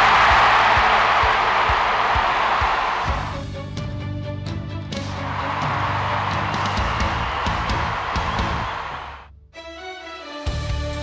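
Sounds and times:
background music with beat: 0:00.0 - 0:09.1.

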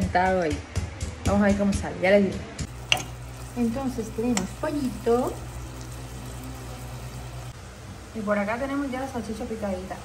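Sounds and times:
chicken sizzling in oil: 0:02.7 - 0:10.0.

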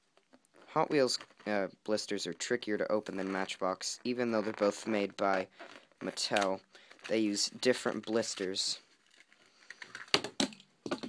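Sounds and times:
plastic crinkling: 0:00.1 - 0:11.0
sharp plastic cracks: 0:09.1 - 0:11.0.

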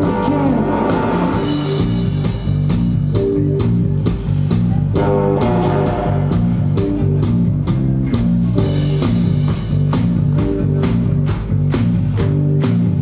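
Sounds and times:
bass guitar: 0:00.0 - 0:13.0
drum kit steady beat: 0:00.0 - 0:13.0
electric guitars: 0:00.0 - 0:13.0.

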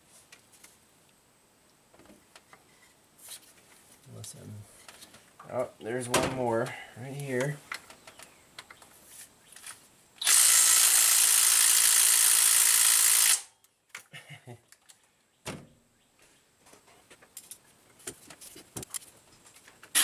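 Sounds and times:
cordless power tool running: 0:10.2 - 0:13.5.

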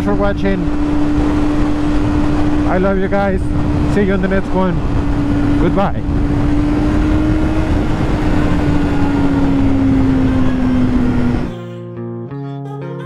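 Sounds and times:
wind and road rush: 0:00.0 - 0:11.5
motorcycle engine cruising: 0:00.0 - 0:11.6
guitar music: 0:06.2 - 0:13.0.

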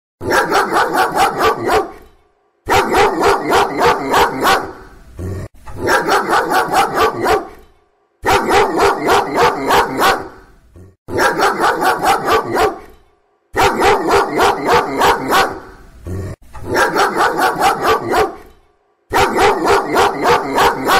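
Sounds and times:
dog barking angrily: 0:00.2 - 0:05.0, 0:05.7 - 0:15.9, 0:16.6 - 0:20.9.

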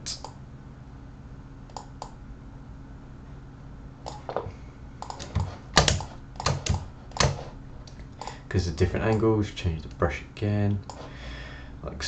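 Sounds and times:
keyboard keys tapping: 0:04.1 - 0:07.5.

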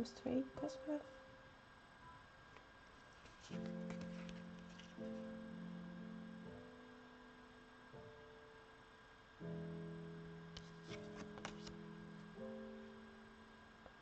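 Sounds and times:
slow held chords music: 0:03.3 - 0:14.0.

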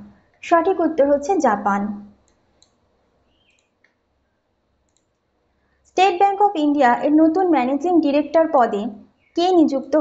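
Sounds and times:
computer mouse clicks: 0:02.2 - 0:04.0, 0:04.8 - 0:05.3.

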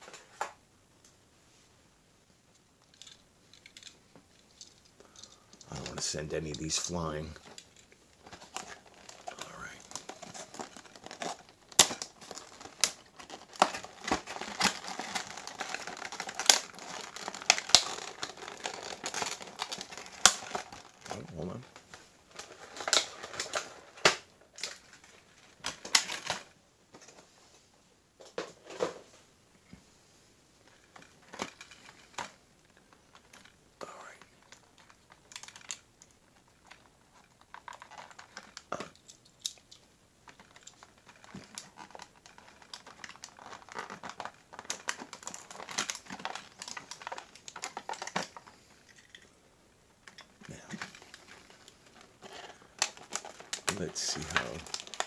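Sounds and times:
plastic packaging crinkling: 0:02.8 - 0:26.6, 0:30.6 - 0:49.4, 0:50.0 - 0:55.0.

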